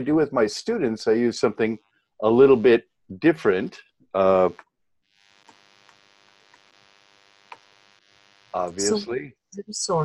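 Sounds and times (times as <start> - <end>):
faint hum: 0.0 - 4.6, 5.2 - 9.3.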